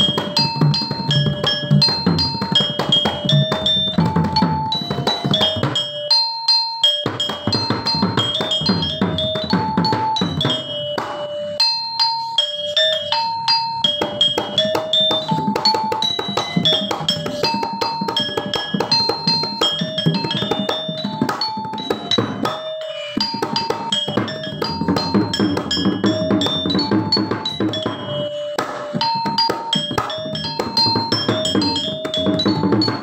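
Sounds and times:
metallophone ringing melody: 0.0 - 33.0.

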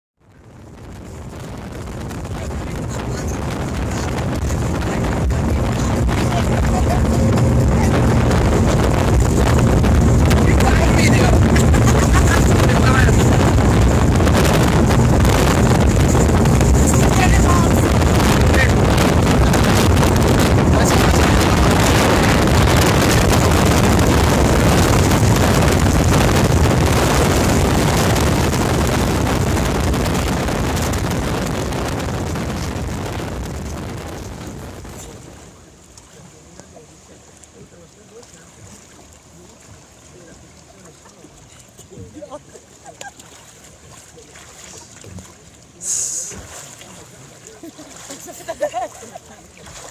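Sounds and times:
motorboat engine hum: 0.2 - 49.9
wind buffeting microphone: 0.3 - 35.8
rushing spray: 1.3 - 35.5, 45.8 - 48.9.

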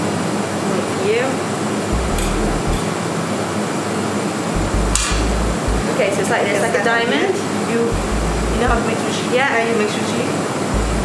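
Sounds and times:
ventilation air noise: 0.0 - 11.0.

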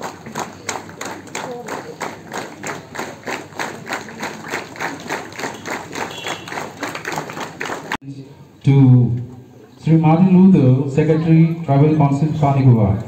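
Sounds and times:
people clapping in rhythm: 0.0 - 8.0.

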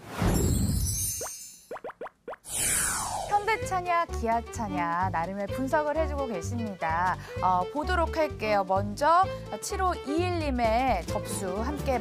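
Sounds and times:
falling swoosh: 2.5 - 3.4
whoosh: 2.5 - 3.5
background music: 2.6 - 12.0.

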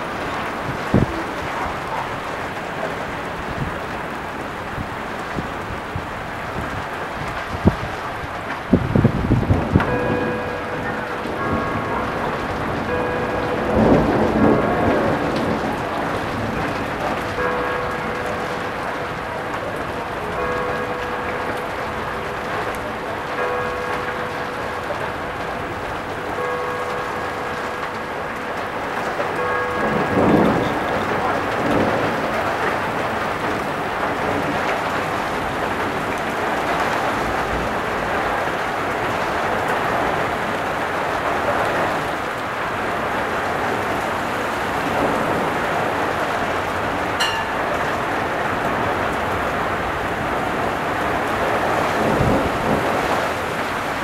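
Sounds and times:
thunder rolling: 0.0 - 23.0, 27.4 - 40.6
heavy rain pouring: 0.0 - 54.0.

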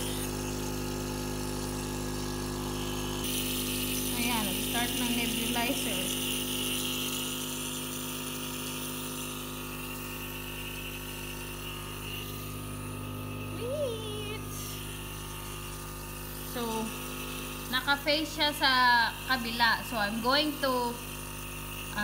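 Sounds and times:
nebulizer motor hum: 0.0 - 22.0.

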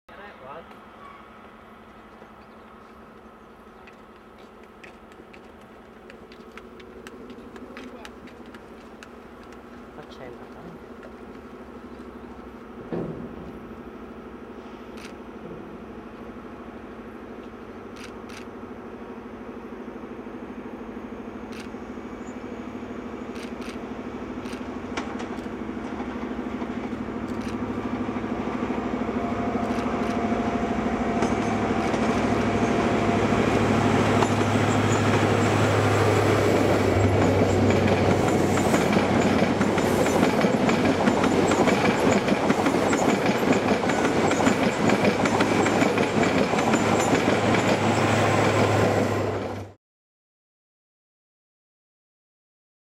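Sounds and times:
diesel train engine: 0.1 - 49.8
train wheels rattling on track: 0.5 - 13.7, 21.5 - 49.8.

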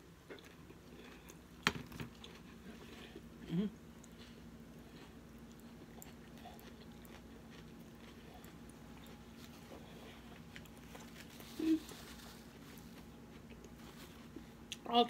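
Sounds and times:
chewing salad: 0.2 - 14.9
person humming mm-hmm: 3.4 - 3.8, 11.5 - 12.0.

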